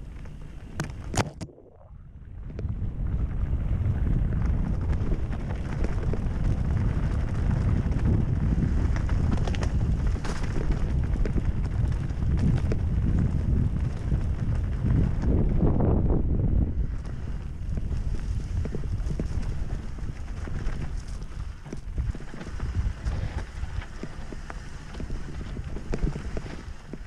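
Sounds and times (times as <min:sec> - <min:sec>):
wind on microphone: 0:00.0 - 0:27.0
mountain bike rattling: 0:02.7 - 0:27.0.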